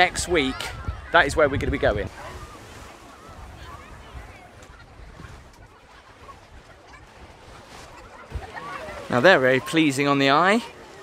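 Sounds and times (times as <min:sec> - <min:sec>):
wind rumble on microphone: 0:00.0 - 0:08.6.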